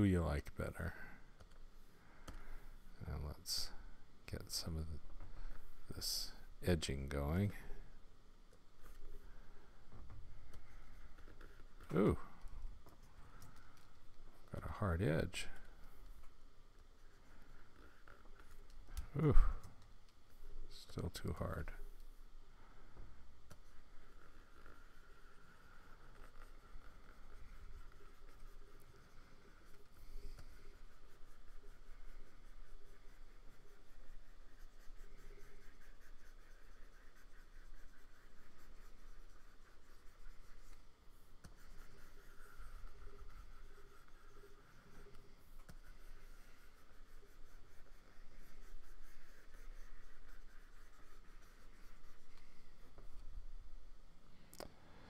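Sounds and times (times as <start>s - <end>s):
stylus scratching on screen: 10.4s - 22.1s, 23.4s - 53.4s.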